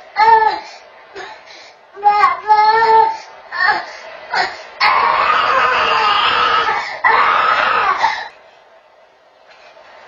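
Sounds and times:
toddler screaming: 4.8s - 8.1s.

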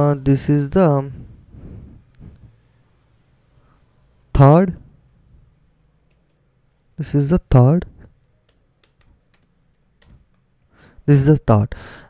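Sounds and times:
keyboard keystrokes: 8.1s - 10.4s.

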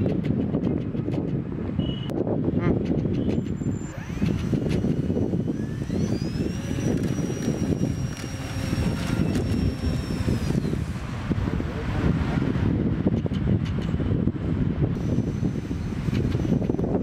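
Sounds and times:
wind buffeting microphone: 0.0s - 17.0s
model plane electric motor whining: 3.6s - 11.5s, 15.0s - 17.0s.

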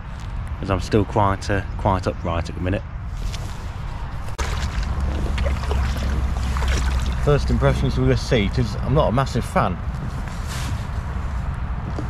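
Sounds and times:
wind rumbling on microphone: 2.8s - 8.9s
light water noise: 3.2s - 8.0s
kayak knocks: 4.4s - 7.2s.

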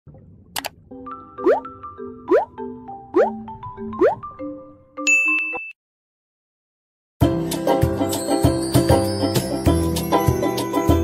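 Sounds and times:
bright high ding: 5.0s - 5.8s.

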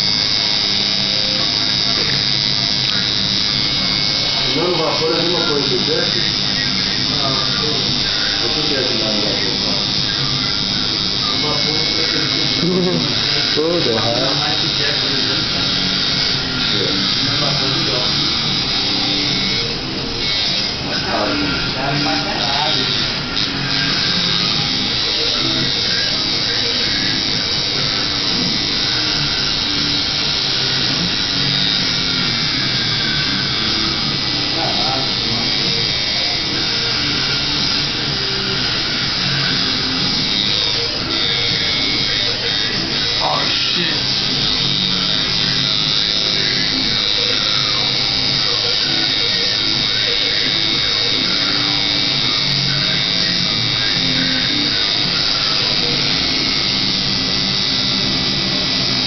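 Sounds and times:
tattoo machine buzzing: 0.0s - 59.0s.

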